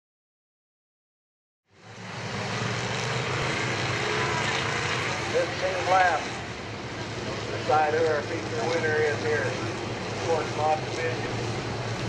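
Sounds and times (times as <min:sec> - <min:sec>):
race car engines: 0:01.7 - 0:12.0.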